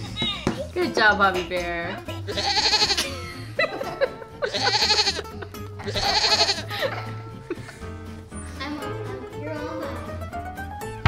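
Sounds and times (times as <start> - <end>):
upbeat background music: 0.0 - 11.0
goat bleating: 2.3 - 3.1, 4.4 - 6.7.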